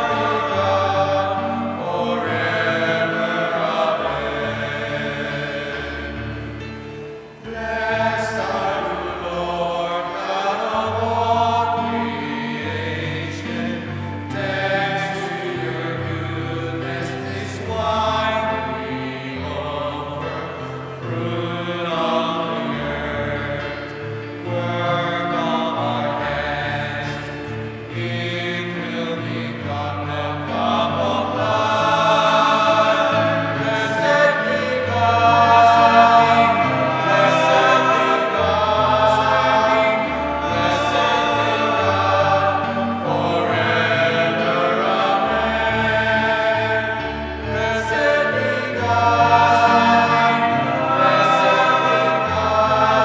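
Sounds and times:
choir singing a hymn: 0:00.0 - 0:53.0.

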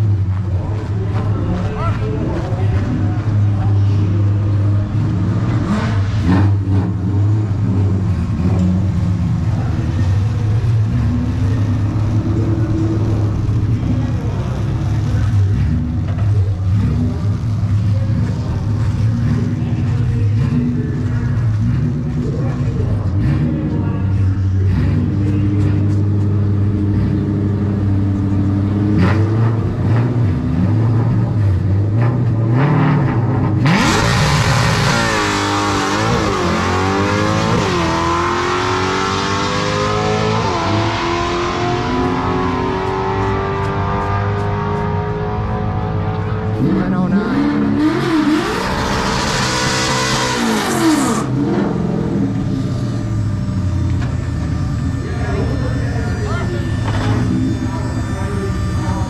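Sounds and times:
drag car engine idling: 0:00.0 - 0:05.6, 0:07.0 - 0:28.9, 0:51.2 - 0:59.0
drag car accelerating: 0:00.0 - 0:59.0.

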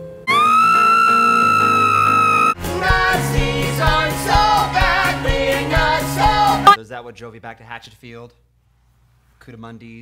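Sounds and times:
woman screaming: 0:00.3 - 0:02.6.

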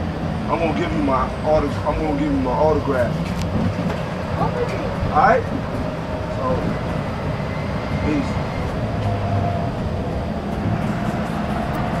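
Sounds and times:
bus engine rumble: 0:00.0 - 0:12.0
faint voices: 0:04.2 - 0:10.1.

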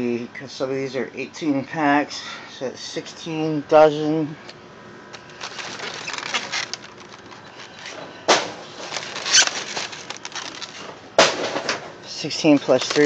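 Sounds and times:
egg cartons rustling and scraping: 0:05.2 - 0:13.0.

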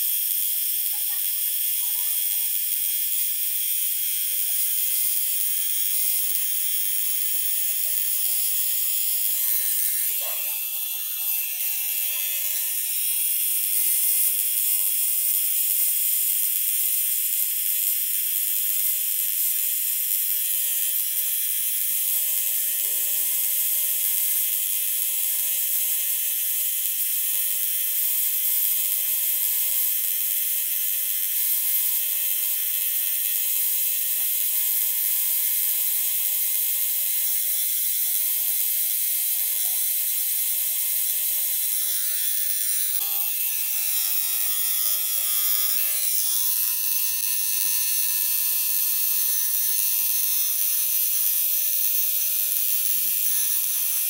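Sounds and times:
tattoo machine buzzing: 0:00.0 - 0:54.0.

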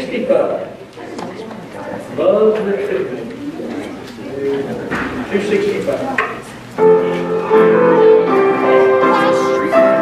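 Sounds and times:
low voices murmuring: 0:00.0 - 0:10.0.

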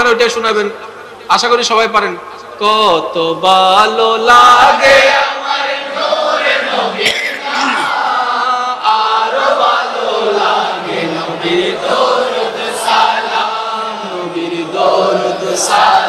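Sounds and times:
male voices singing in chorus: 0:03.2 - 0:16.0.

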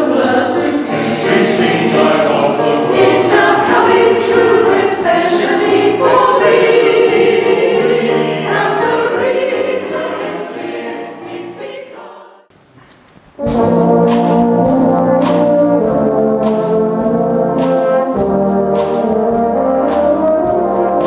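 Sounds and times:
choir singing: 0:00.0 - 0:12.5.

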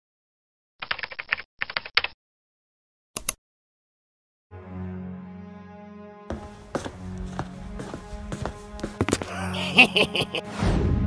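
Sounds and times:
keyboard key clicks: 0:03.2 - 0:03.4.

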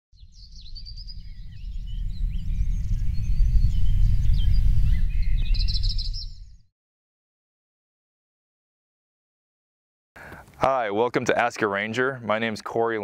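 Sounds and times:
loud steady low rumble: 0:00.2 - 0:06.3
birds chirping and calling: 0:00.3 - 0:06.5.

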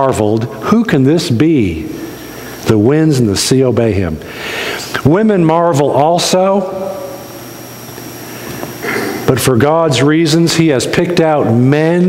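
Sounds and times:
person speaking: 0:00.0 - 0:07.5
low electrical hum: 0:00.0 - 0:12.0.

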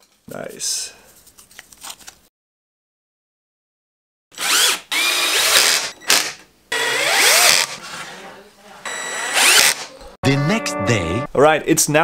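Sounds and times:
cordless drill driving screws: 0:04.4 - 0:07.8, 0:08.9 - 0:09.9.

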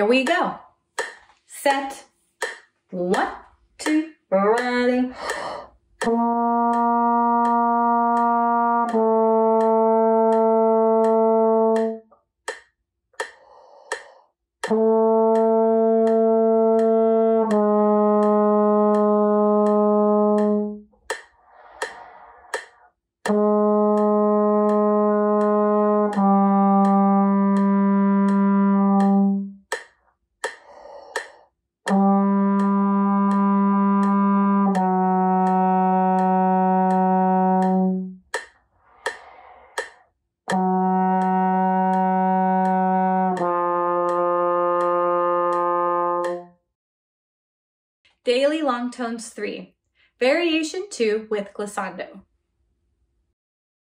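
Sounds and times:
clicking beat: 0:00.0 - 0:46.6
trombone playing long tones: 0:06.1 - 0:12.0, 0:14.6 - 0:20.8, 0:23.3 - 0:29.6, 0:31.9 - 0:38.2, 0:40.5 - 0:46.5
player breathing in: 0:13.3 - 0:14.3, 0:21.4 - 0:22.9, 0:30.6 - 0:31.5, 0:38.8 - 0:40.0.

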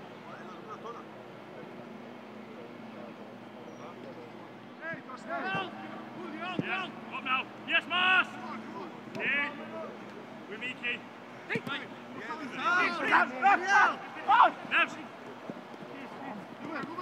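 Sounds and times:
players shouting: 0:00.0 - 0:17.0
short thuds: 0:06.5 - 0:06.9, 0:09.0 - 0:09.4.

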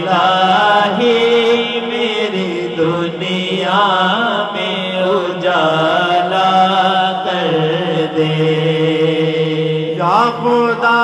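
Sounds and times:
male voices holding drone: 0:00.0 - 0:11.0
man chanting with ornamented notes: 0:00.0 - 0:11.0.

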